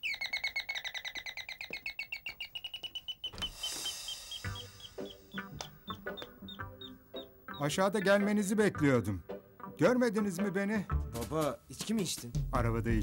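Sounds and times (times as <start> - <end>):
high chirping trill: 0.0 - 8.3
brief hiss: 3.5 - 4.7.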